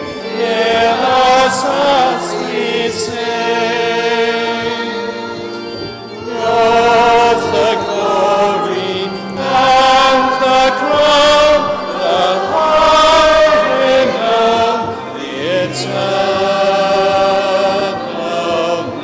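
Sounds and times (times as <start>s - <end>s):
voices singing a slow hymn: 0.0s - 19.0s.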